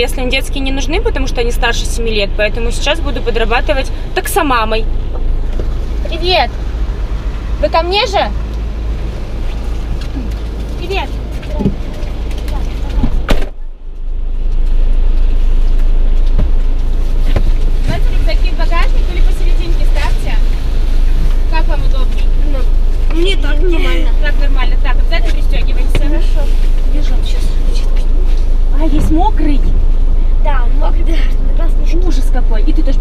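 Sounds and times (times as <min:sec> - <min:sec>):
low rumble inside car: 0:00.0 - 0:33.0
car door shutting: 0:12.8 - 0:13.8.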